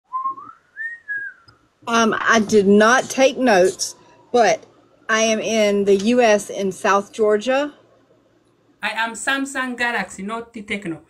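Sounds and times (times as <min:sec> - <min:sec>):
person whistling a tune: 0:00.1 - 0:01.5.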